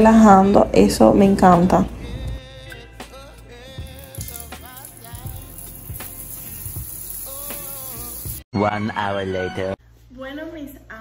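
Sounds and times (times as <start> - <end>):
background music with melody: 1.3 - 9.8
shower running: 3.9 - 8.4.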